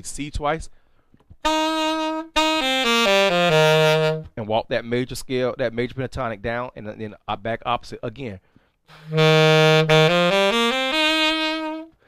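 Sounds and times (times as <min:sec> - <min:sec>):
alto saxophone run: 0:01.4 - 0:04.3, 0:08.9 - 0:12.0.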